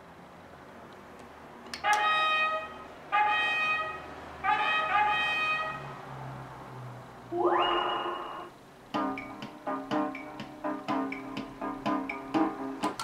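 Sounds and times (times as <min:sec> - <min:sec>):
slot machine electronic fanfare: 0:07.3 - 0:08.6.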